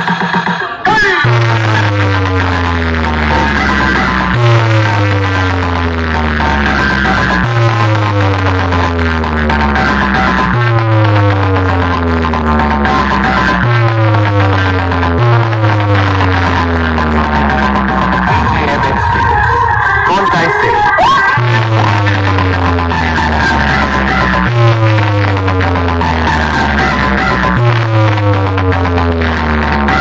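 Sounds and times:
loud electronic dance music: 0:00.0 - 0:30.0
deep bass note sliding down: 0:01.2 - 0:30.0.

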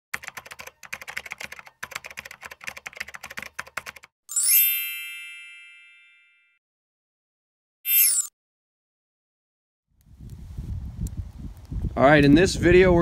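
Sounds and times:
keyboard typing clicks: 0:00.2 - 0:04.1
bright chime with upward sweep: 0:04.3 - 0:06.5, 0:07.9 - 0:08.3.

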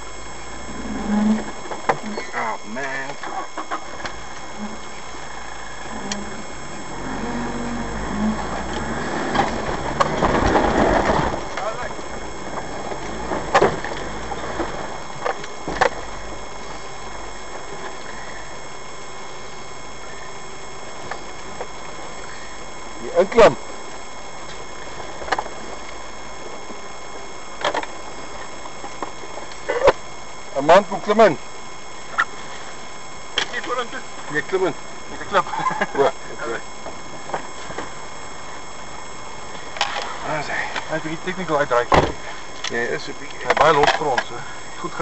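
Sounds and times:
vehicle engine at low speed: 0:00.0 - 0:45.0.

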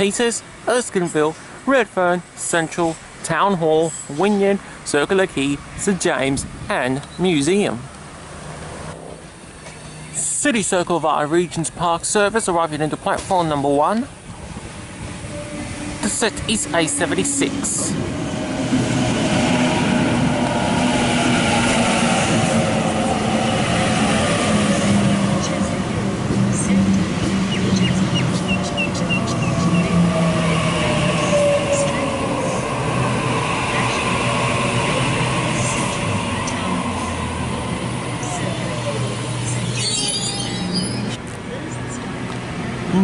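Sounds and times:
high chirps: 0:39.4 - 0:41.2.

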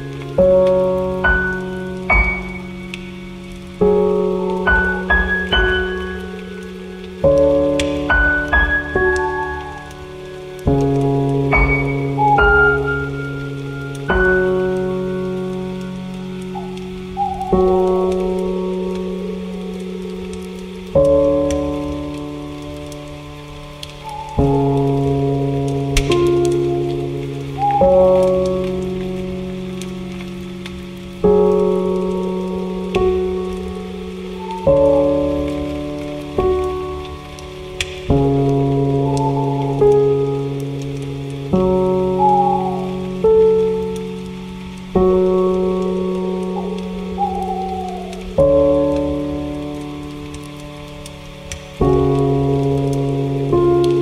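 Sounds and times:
rain patter: 0:00.0 - 0:54.0
soft piano chords: 0:00.0 - 0:54.0.

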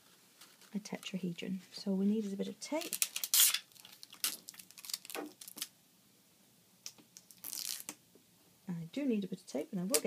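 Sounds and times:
rustling and scraping handling noise: 0:00.0 - 0:04.5.

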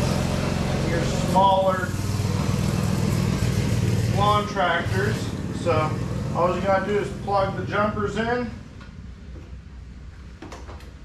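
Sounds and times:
diesel engine idling: 0:00.0 - 0:09.3.

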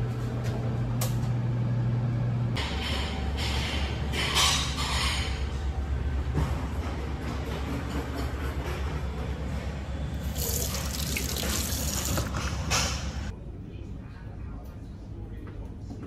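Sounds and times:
tap water running over hand: 0:10.2 - 0:12.3
water splash: 0:10.3 - 0:12.3.

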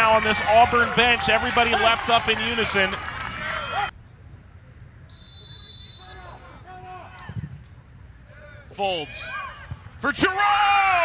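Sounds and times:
crowd noise: 0:00.0 - 0:10.4
referee's whistle blast: 0:05.1 - 0:06.4.

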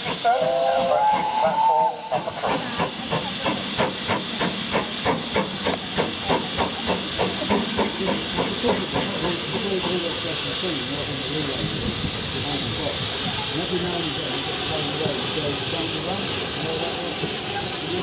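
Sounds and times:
steam hissing: 0:00.0 - 0:18.0.

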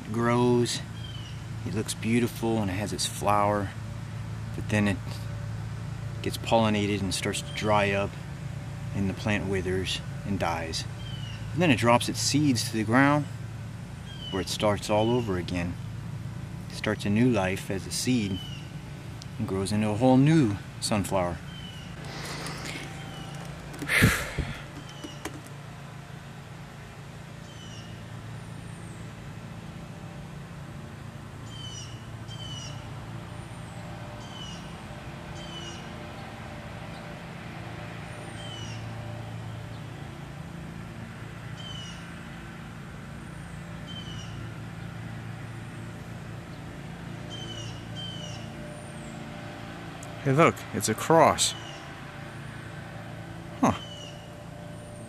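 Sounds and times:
steady low hum: 0:00.0 - 0:35.3
bird chirping: 0:00.9 - 0:01.5, 0:10.8 - 0:11.6, 0:14.0 - 0:15.4, 0:18.2 - 0:18.8, 0:20.4 - 0:25.5, 0:45.8 - 0:49.2, 0:53.6 - 0:54.3.

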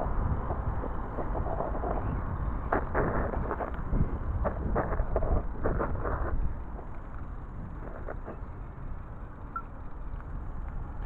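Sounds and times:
bike tyres rolling on asphalt: 0:00.0 - 0:11.0
wind rumble on microphone: 0:00.0 - 0:11.0.

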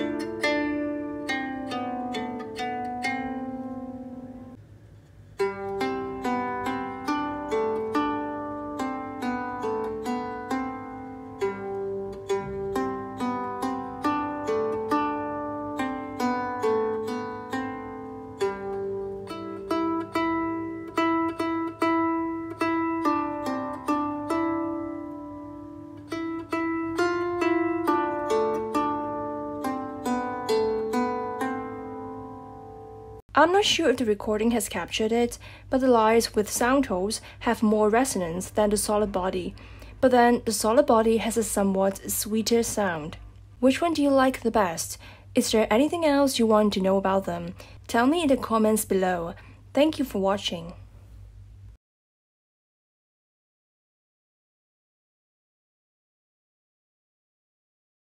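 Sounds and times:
plucked lyre harp melody: 0:00.0 - 0:04.6, 0:05.4 - 0:33.2.

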